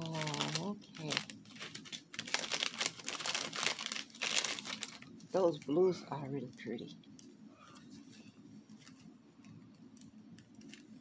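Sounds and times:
plastic bags crinkling: 0.0 - 5.8.

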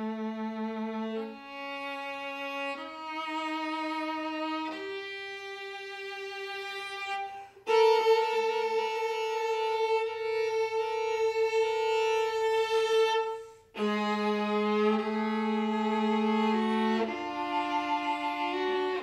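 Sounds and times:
viola bowed notes: 0.0 - 19.0.

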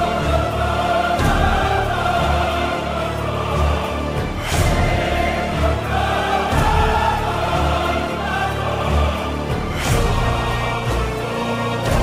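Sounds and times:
choir-like voices holding a chord: 0.0 - 12.0.

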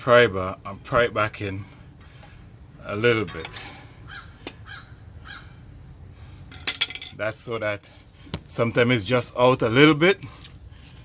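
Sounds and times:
crow cawing: 4.1 - 5.6.

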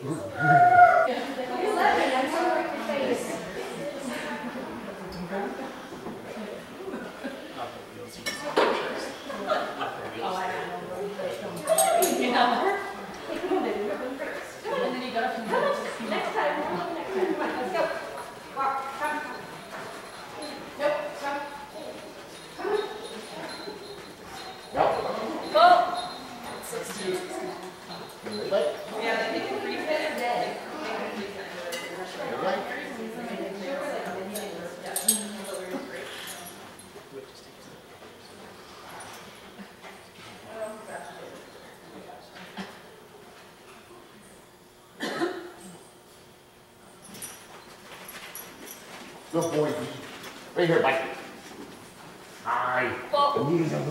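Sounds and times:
dog barking and whining: 0.0 - 1.1.

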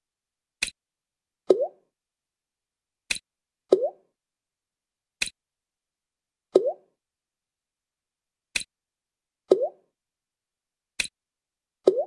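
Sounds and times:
sharp click: 8.5 - 8.8, 11.0 - 11.2.

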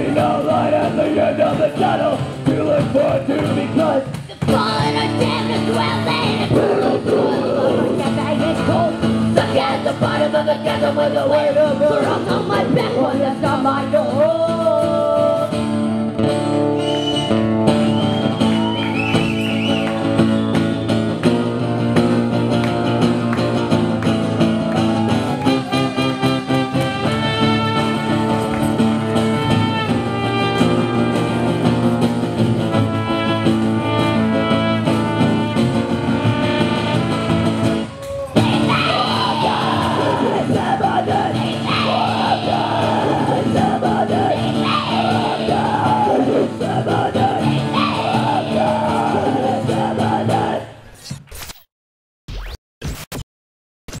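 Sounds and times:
acoustic guitar: 0.0 - 50.8
trumpet: 25.6 - 38.7
shouted vocals: 37.9 - 50.7
short electronic blips: 52.3 - 53.2.

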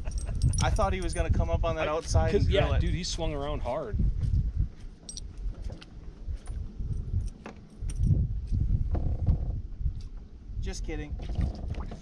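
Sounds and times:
wind: 0.0 - 12.0
water against boat: 4.9 - 12.0.

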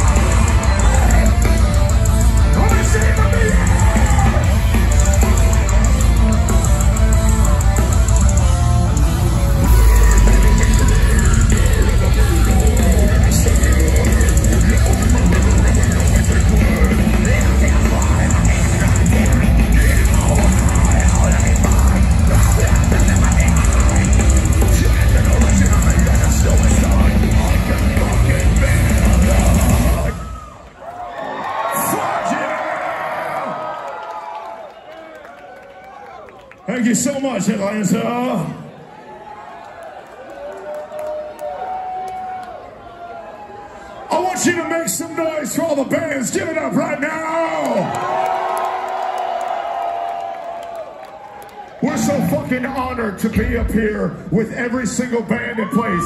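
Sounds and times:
loud live metal band: 0.0 - 30.6
crowd cheering and yelling: 0.0 - 56.0.

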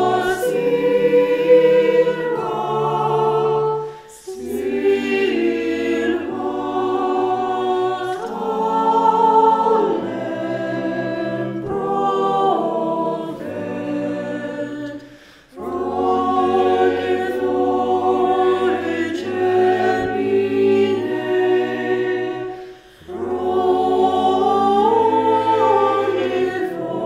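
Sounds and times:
choir singing a cappella: 0.0 - 27.0.

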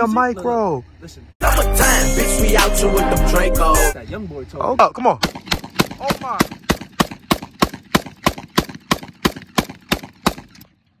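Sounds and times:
rapid pistol shots: 5.2 - 10.7.

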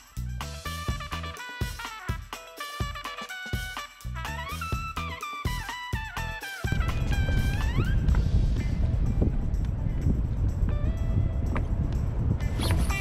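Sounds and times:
background music: 0.0 - 13.0
wind buffeting microphone: 6.7 - 13.0.

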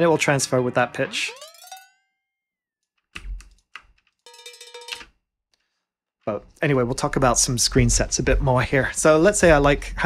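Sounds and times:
cowbell shaking with metallic ring: 4.3 - 5.0
cowbell strike: 4.3 - 5.0.

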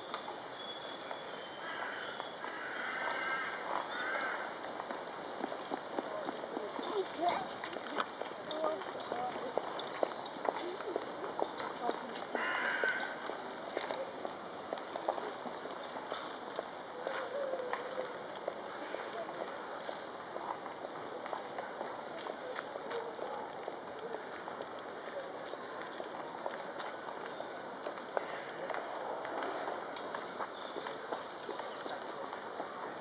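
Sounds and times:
horse hooves on tarmac: 4.6 - 12.4
people talking: 6.1 - 9.7, 10.5 - 12.4.

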